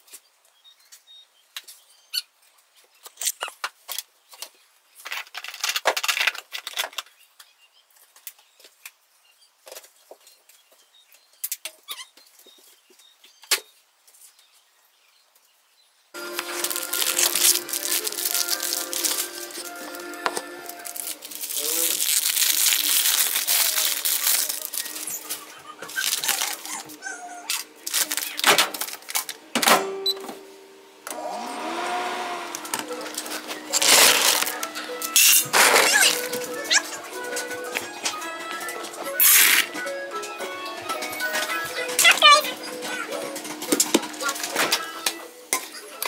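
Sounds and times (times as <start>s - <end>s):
background music: 16.2s - 27.0s, 30.8s - 46.0s.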